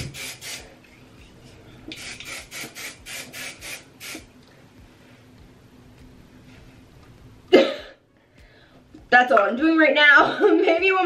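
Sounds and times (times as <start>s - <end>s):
faint room hum: 0.0s - 11.0s
woman coughing: 7.5s - 8.0s.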